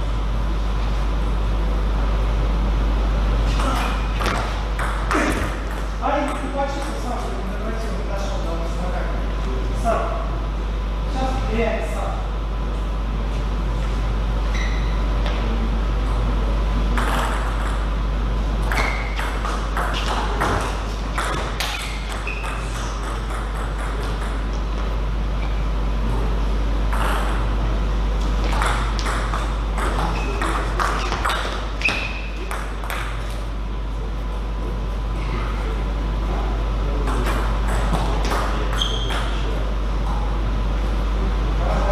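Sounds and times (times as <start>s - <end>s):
steady low hum: 0.0s - 41.9s
shoe squeaks: 14.4s - 15.1s, 18.7s - 19.2s, 21.6s - 23.0s, 25.4s - 25.6s, 30.0s - 32.4s, 38.7s - 39.4s.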